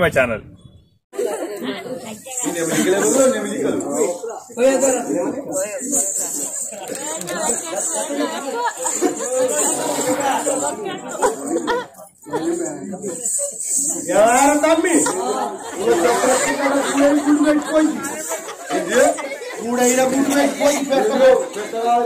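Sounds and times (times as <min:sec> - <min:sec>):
men talking: 0:01.2 - 0:22.0.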